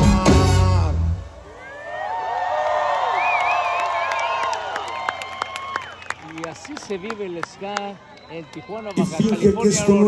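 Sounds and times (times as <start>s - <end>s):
crowd cheering and whooping: 1.4s - 10.0s.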